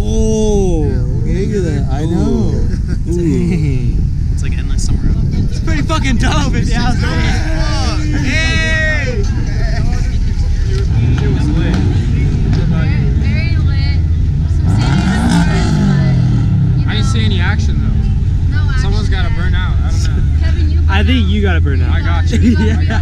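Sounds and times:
car engine running: 0:00.0 - 0:23.0
scattered voices: 0:00.0 - 0:23.0.

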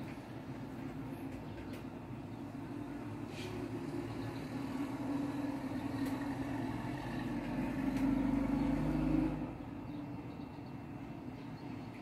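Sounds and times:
motor vehicle engine hum: 0:00.0 - 0:12.0.

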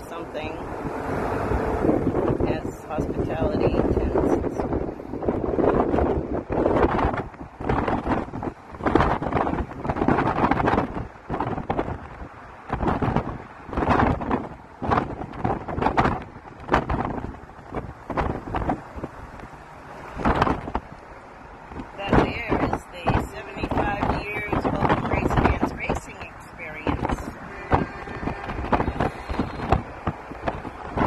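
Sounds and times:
car road noise: 0:00.0 - 0:31.0
wind buffeting microphone: 0:00.0 - 0:31.0.

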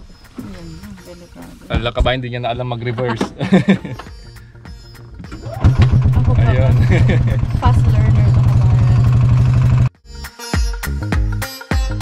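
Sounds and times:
golf cart motor droning: 0:05.2 - 0:10.0.

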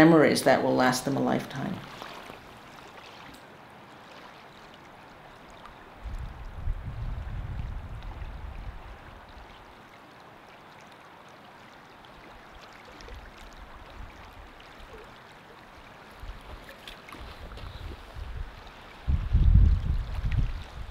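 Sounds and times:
water lapping at shore: 0:00.0 - 0:20.9
wind gusting on microphone: 0:06.0 - 0:09.6, 0:17.2 - 0:20.9.

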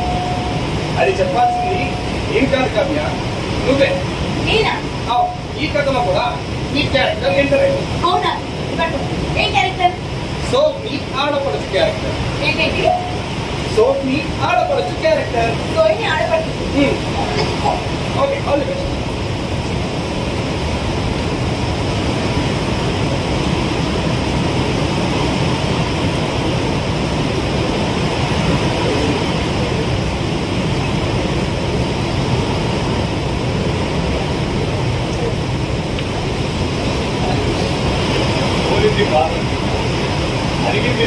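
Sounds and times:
steady rushing noise: 0:00.0 - 0:41.0.

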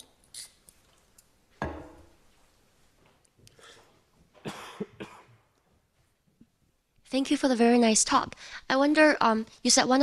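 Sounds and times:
man coughing: 0:04.4 - 0:05.5.

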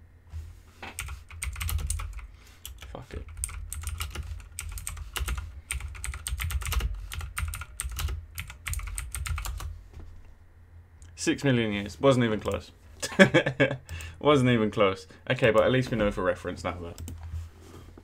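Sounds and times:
typing on computer keyboard: 0:01.0 - 0:09.7.

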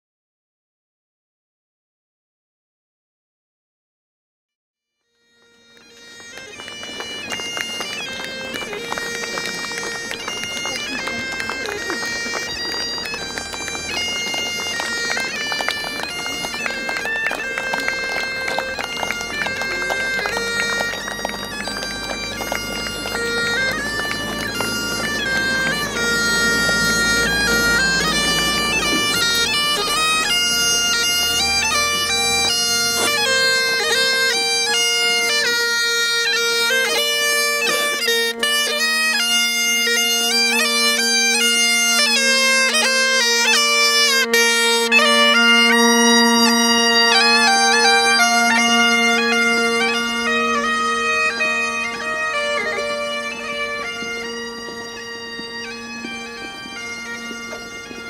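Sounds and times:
bagpipes playing a tune: 0:05.0 - 0:58.0.

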